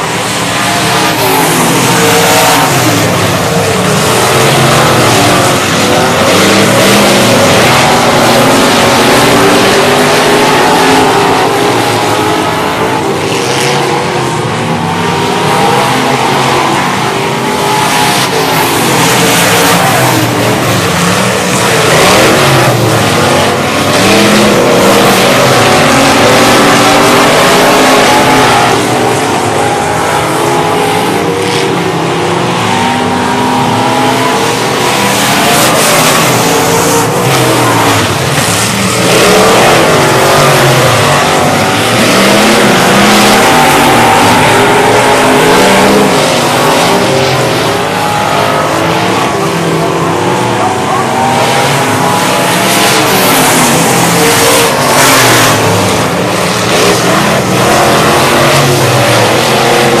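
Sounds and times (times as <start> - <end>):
race car engines revving: 0.0 - 60.0.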